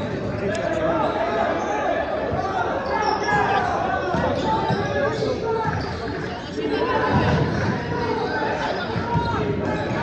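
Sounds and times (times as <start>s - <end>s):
voices and shouts: 0.0s - 10.0s.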